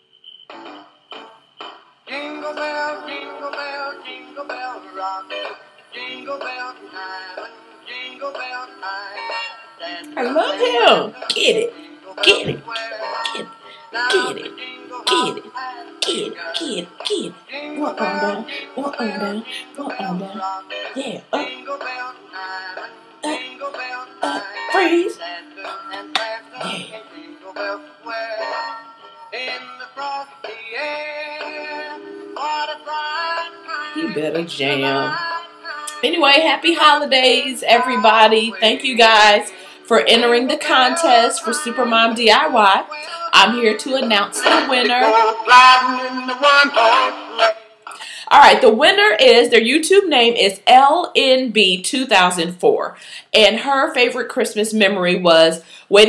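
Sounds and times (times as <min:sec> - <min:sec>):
christmas song singing over music: 0:00.0 - 0:56.0.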